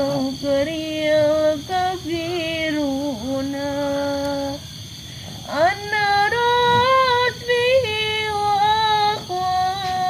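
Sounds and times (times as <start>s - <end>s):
woman singing long notes: 5.5s - 10.0s.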